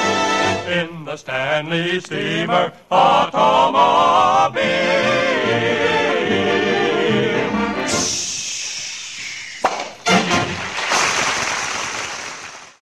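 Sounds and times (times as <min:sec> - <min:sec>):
male vocal quartet and orchestra: 0:00.0 - 0:08.3
audience applause: 0:09.8 - 0:12.8.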